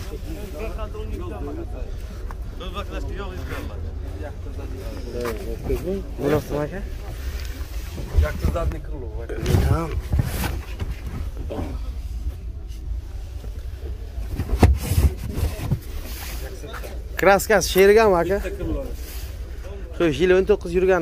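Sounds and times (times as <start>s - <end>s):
voices nearby: 0.0s - 21.0s.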